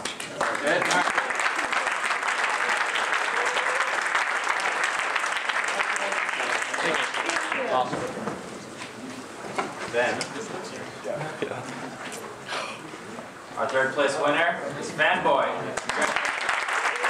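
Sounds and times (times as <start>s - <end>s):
audience applause: 0.0s - 8.0s, 15.8s - 17.0s.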